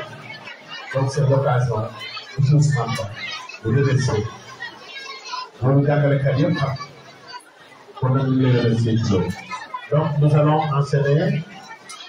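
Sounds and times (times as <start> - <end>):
crowd chatter: 0.0 - 12.0
man talking into microphone: 0.9 - 4.3, 5.6 - 6.9, 8.0 - 11.5.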